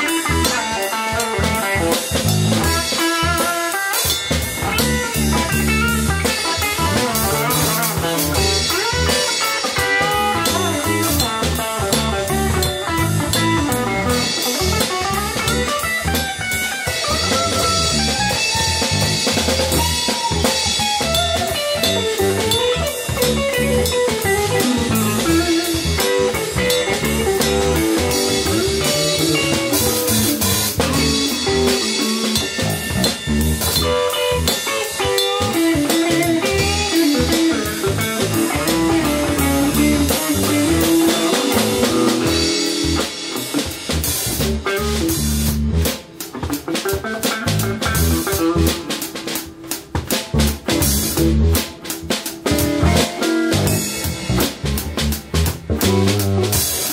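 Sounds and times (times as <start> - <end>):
drum kit: 0.0 - 56.9
electric bass: 0.0 - 56.9
electric guitar solo: 0.0 - 56.9.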